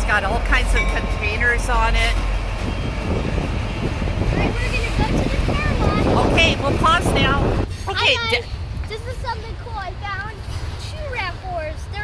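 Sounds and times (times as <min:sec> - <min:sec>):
freight train rumbling past: 0:00.0 - 0:12.0.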